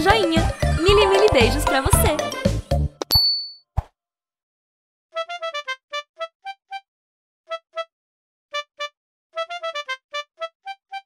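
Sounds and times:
bright high ding: 0:03.1 - 0:03.6.

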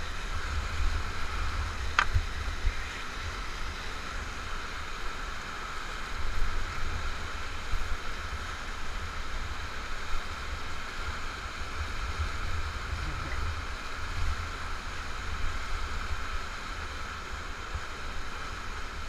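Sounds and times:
whitewater rapids rushing: 0:00.0 - 0:19.0.

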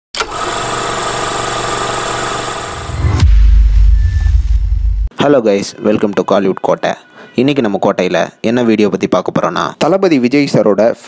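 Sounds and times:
deep bass rumble: 0:02.8 - 0:05.1.

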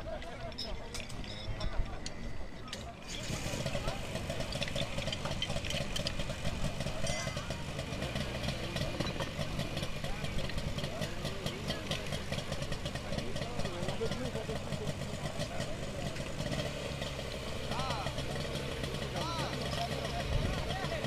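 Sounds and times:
voices calling: 0:00.0 - 0:21.0
pump engine running: 0:02.9 - 0:21.0.

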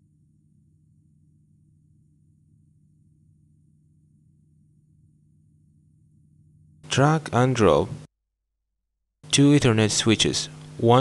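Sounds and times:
faint low hum: 0:00.0 - 0:08.1.

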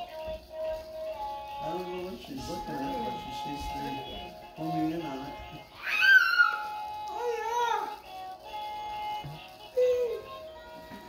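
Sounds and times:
faint background music: 0:00.0 - 0:11.0
toddler squealing: 0:05.8 - 0:07.9.

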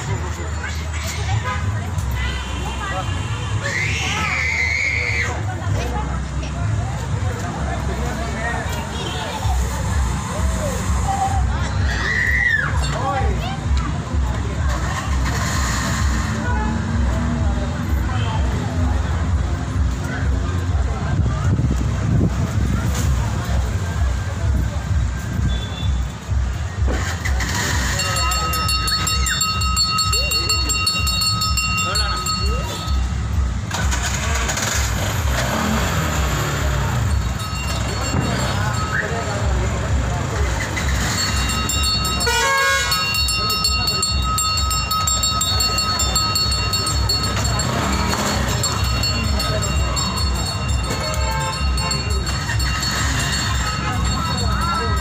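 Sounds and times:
crowd of voices: 0:00.0 - 0:55.0
high-pitched horn: 0:41.2 - 0:45.4.

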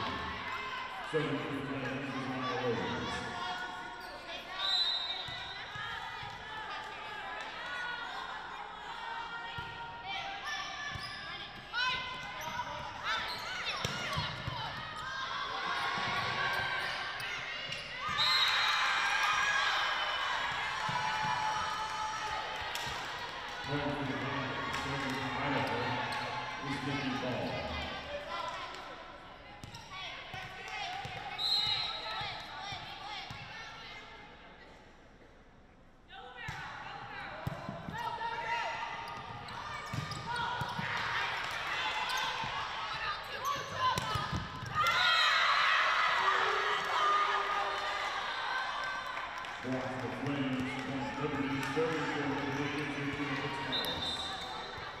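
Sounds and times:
sneakers squeaking: 0:03.9 - 0:05.8, 0:10.8 - 0:18.7, 0:39.0 - 0:41.1, 0:41.8 - 0:45.2, 0:52.3 - 0:55.0.

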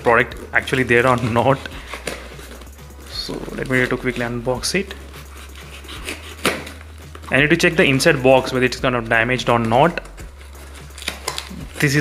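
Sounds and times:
knife slicing packing tape: 0:05.3 - 0:06.9, 0:10.4 - 0:12.0.

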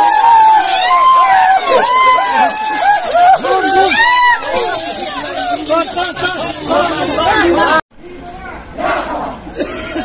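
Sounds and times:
crowd of men shouting: 0:00.0 - 0:07.8.

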